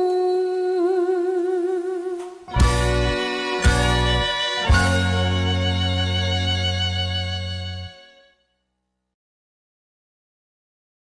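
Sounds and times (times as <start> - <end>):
woman singing long note: 0.0 - 2.4.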